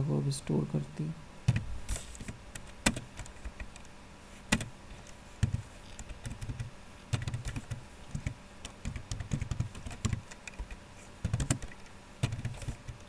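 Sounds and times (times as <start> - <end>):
typing on computer keyboard: 2.2 - 3.9, 4.5 - 4.7, 5.4 - 13.0.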